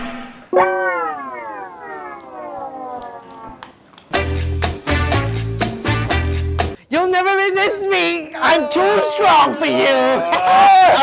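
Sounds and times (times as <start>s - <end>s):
siren wailing: 0.4s - 3.8s.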